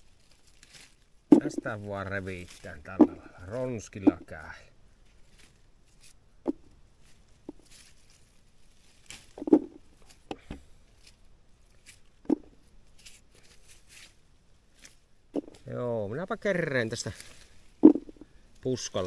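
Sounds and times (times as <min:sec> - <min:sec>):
leaves and twigs rustling: 0:00.0 - 0:19.0.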